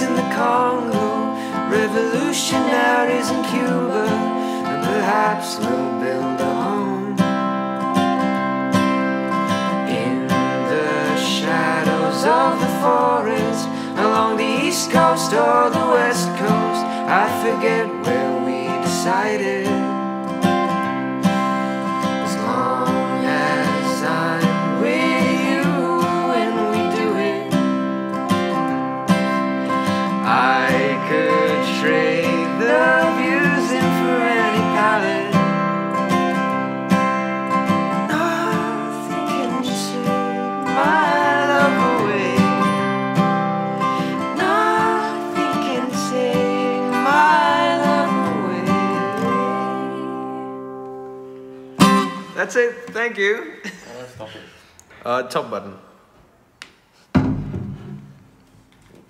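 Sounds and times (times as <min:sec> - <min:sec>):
two voices singing in harmony: 0:00.0 - 0:07.3, 0:09.5 - 0:19.9, 0:21.6 - 0:35.8, 0:37.8 - 0:50.9
strummed acoustic guitar: 0:00.0 - 0:52.6.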